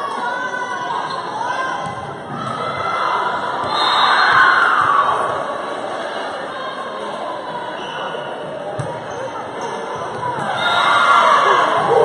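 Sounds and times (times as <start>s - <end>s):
crowd cheering and shouting: 0.0s - 7.7s, 10.1s - 12.0s.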